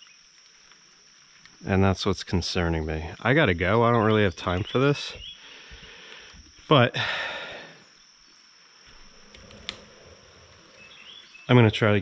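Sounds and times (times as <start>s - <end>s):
insect chirring: 0.0s - 12.0s.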